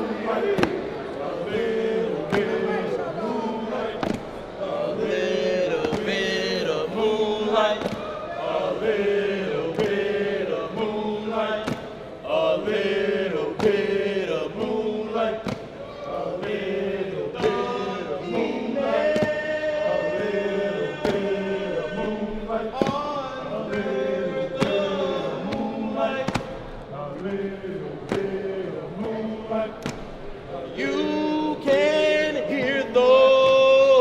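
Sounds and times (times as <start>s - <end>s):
men chanting in unison: 0.0s - 34.0s
sharp rhythmic beat: 16.4s - 30.2s.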